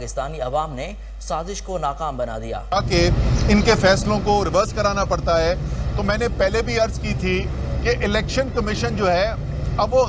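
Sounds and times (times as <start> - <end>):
man speaking: 0.0 - 10.0
low background rumble: 2.8 - 10.0.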